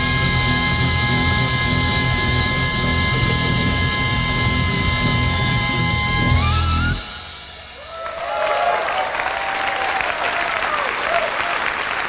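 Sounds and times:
double bass: 0.0s - 7.9s
saxophone and trumpet holding note: 0.0s - 8.0s
cymbal and drum roll: 0.0s - 8.7s.

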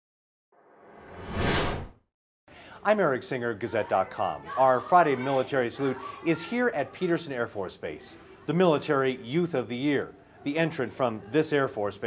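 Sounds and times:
whoosh sound effect: 0.8s - 2.0s.

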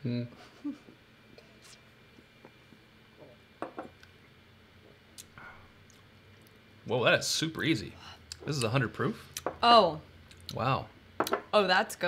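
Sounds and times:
glasses knocking on wooden bar: 3.6s - 3.9s.

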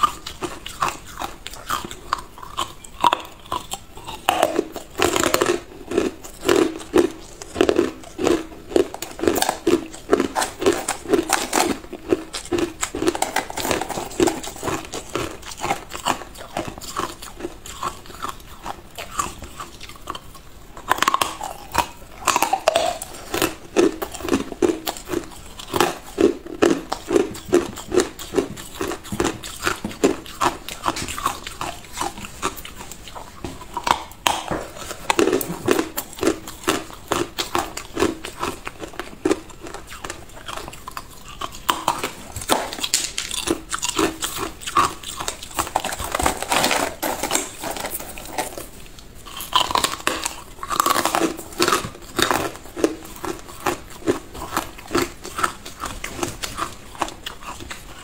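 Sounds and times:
ice being bitten and chewed: 0.0s - 58.0s.

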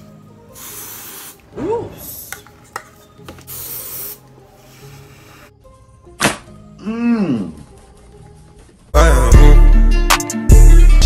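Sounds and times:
aerosol spray hissing: 0.5s - 2.4s, 3.3s - 5.5s
person humming: 6.8s - 7.7s.

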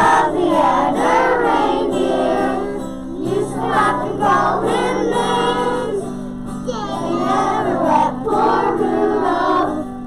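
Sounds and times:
children singing: 0.0s - 10.0s.

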